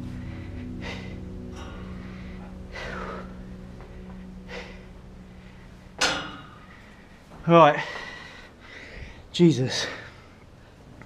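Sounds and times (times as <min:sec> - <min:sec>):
person breathing heavily: 0:00.0 - 0:10.9
faint steady hum: 0:00.0 - 0:11.0.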